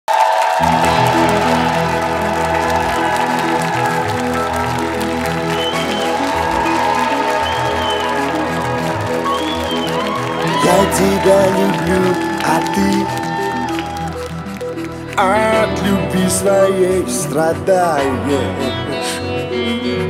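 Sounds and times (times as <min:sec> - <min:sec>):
synthesizer keyboard chords: 0:00.6 - 0:20.0.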